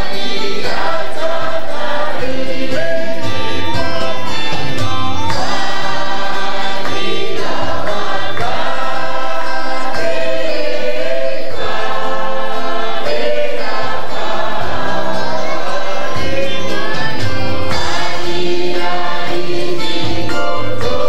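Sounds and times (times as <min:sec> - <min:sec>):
congregation singing: 0:00.0 - 0:21.0.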